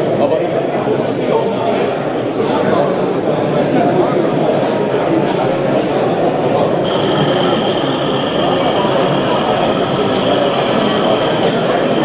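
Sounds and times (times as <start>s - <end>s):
chatter of busy hall: 0.0s - 12.0s
model locomotive whine: 6.6s - 12.0s.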